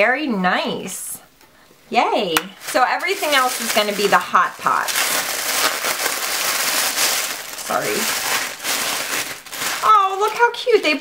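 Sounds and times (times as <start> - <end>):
packaging rustling and crinkling: 2.5 - 11.0.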